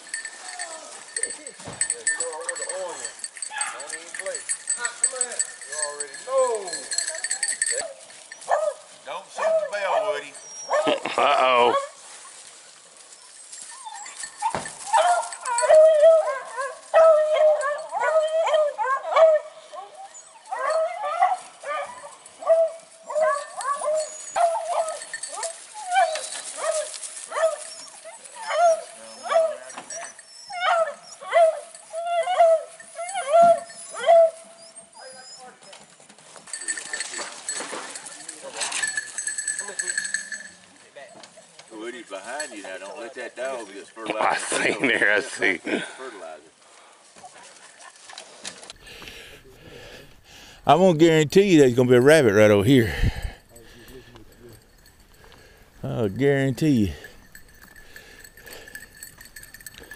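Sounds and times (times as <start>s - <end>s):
high ringing: 0.0s - 8.5s, 13.2s - 15.9s, 36.5s - 40.7s, 48.8s - 59.9s
dogs barking and yelping: 0.0s - 37.6s, 53.0s - 55.8s, 57.0s - 59.9s.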